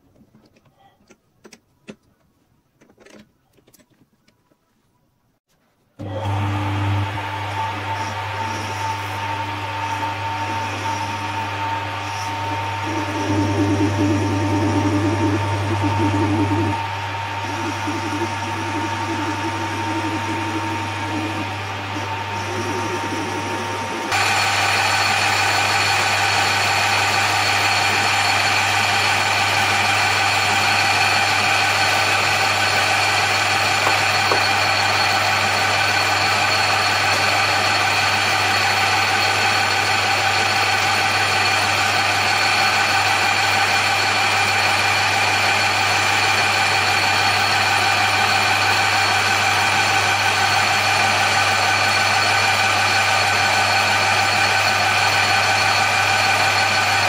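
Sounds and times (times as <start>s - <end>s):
metal lathe humming and whining: 6.0s - 57.0s.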